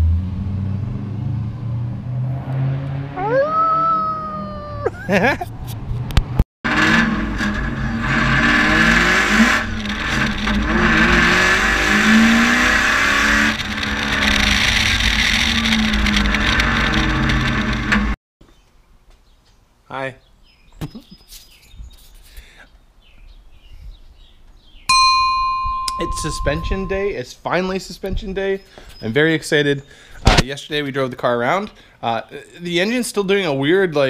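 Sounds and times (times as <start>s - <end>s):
car engine revving with loud exhaust: 0.0s - 3.3s, 5.5s - 18.2s.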